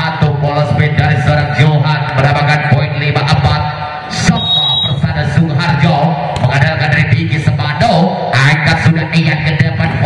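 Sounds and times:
man talking: 0.0s - 10.0s
referee whistle blast: 4.2s - 5.0s.

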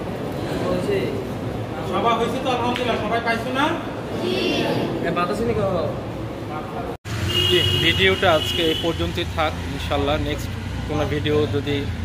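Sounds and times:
man speaking: 6.6s - 12.0s.

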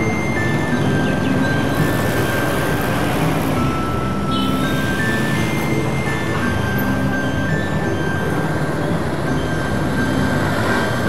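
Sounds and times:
background music of held tones: 0.0s - 11.0s
passing cars and motorbikes: 0.0s - 11.0s.

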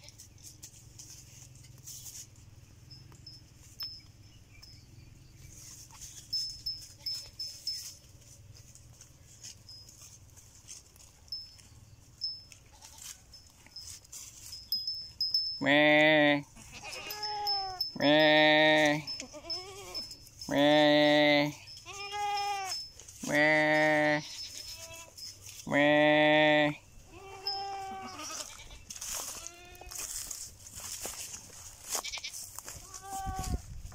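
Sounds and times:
goats tearing grass: 5.6s - 15.4s, 27.4s - 33.9s
goat bleating: 12.7s - 13.2s, 15.6s - 30.1s, 31.9s - 33.6s.

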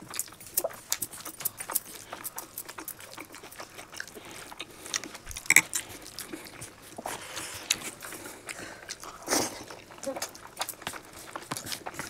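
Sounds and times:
chewing and lip smacking: 0.0s - 12.0s.

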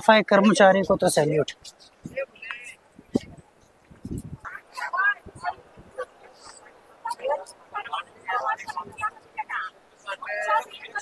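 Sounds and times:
people talking nearby: 0.0s - 11.0s.

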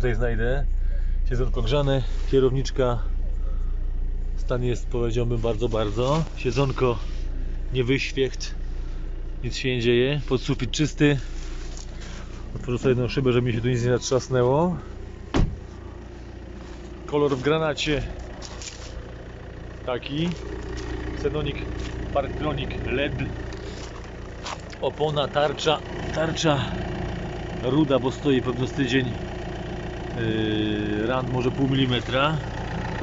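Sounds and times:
engine idling: 0.0s - 33.0s
steady low hum: 0.0s - 33.0s
car door shutting: 15.2s - 15.9s.

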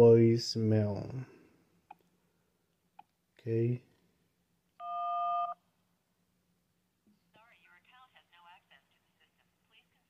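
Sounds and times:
phone keypad beep: 4.8s - 5.6s
recorded voice through phone: 7.4s - 10.0s.

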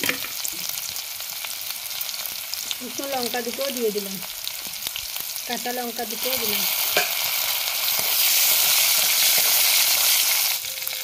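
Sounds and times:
spices sizzling in oil: 0.0s - 11.0s.

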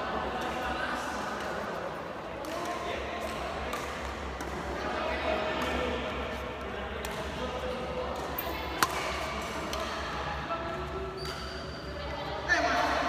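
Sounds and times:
racket hitting shuttlecock: 2.4s - 4.7s, 8.1s - 10.1s.

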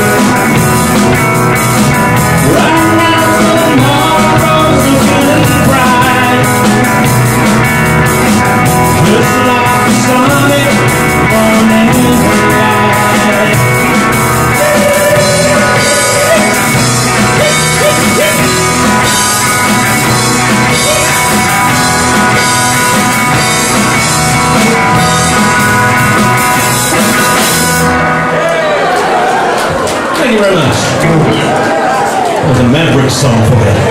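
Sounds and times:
country-rock band playing: 0.0s - 33.9s.

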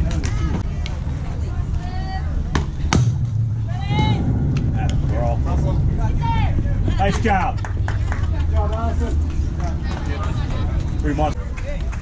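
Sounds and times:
steady low rumble: 0.6s - 12.0s.

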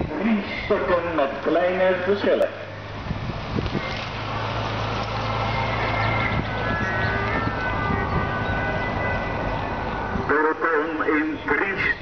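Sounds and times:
road noise: 0.0s - 12.0s
motorcycle and car engines hum: 1.3s - 12.0s.

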